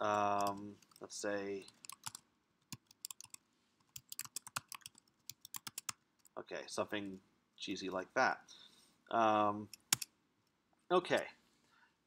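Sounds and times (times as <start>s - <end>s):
computer keyboard keystrokes: 1.8s - 3.4s, 4.0s - 6.0s.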